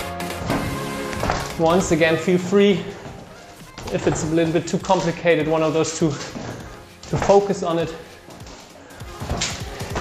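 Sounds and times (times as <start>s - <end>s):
electronic music with fast beat: 0.0s - 10.0s.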